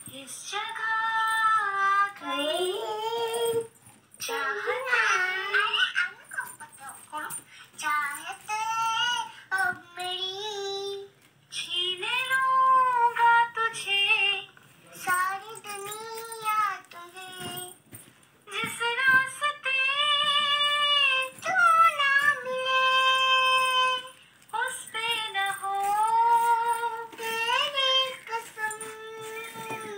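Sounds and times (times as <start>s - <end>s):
child singing: 0.0s - 17.8s, 18.5s - 29.9s.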